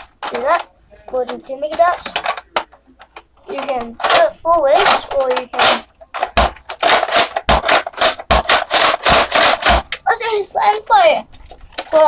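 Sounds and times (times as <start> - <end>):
child's voice: 0.3 - 2.3, 3.4 - 5.9, 10.0 - 11.3.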